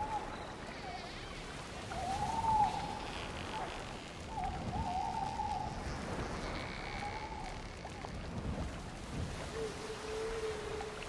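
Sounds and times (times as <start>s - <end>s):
rushing water: 0.0s - 11.0s.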